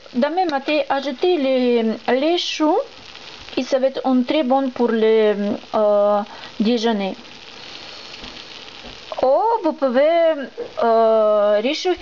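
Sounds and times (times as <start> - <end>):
food sizzling on stovetop: 0.0 - 12.0.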